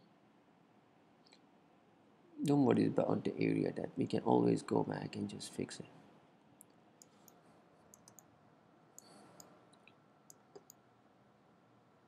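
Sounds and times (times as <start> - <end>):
computer mouse clicks: 6.6 - 8.3, 9.0 - 10.8.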